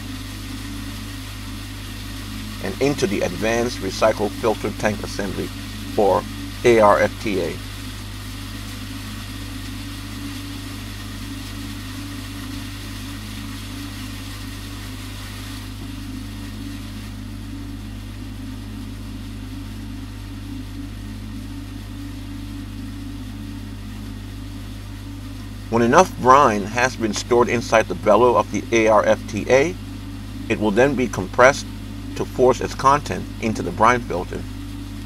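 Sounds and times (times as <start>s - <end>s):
machine hum with hiss: 0.0s - 35.0s.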